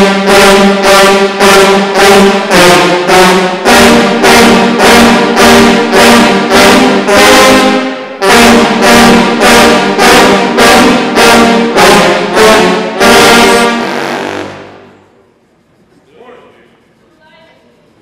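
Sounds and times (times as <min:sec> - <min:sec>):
sousaphone ensemble playing chords: 0:00.0 - 0:15.0.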